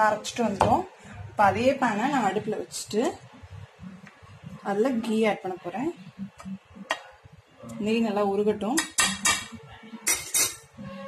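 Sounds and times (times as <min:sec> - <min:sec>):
metal spoon scraping frying pan: 0:08.9 - 0:11.0.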